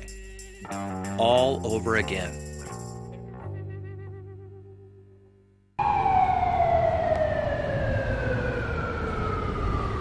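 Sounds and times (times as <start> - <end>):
siren-like wail gliding down: 5.8 - 10.0.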